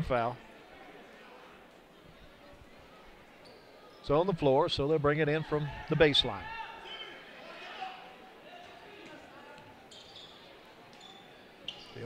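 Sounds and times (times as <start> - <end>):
gym background noise: 0.0 - 12.0
sneaker squeaks on hardwood: 9.9 - 12.0.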